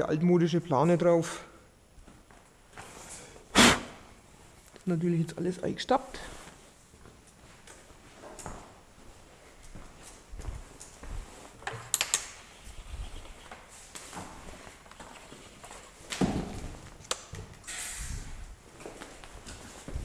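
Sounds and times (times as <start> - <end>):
footsteps: 6.2 - 20.0
brief hiss: 17.7 - 18.3.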